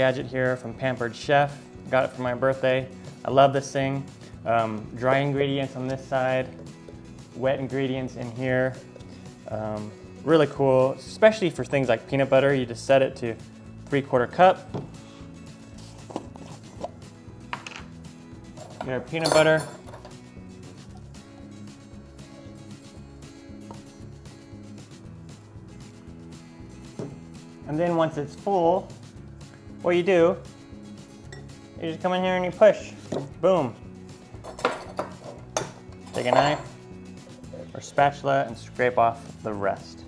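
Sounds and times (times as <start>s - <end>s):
soft background music: 0.0s - 40.0s
lid tapping on wooden table: 27.0s - 27.2s.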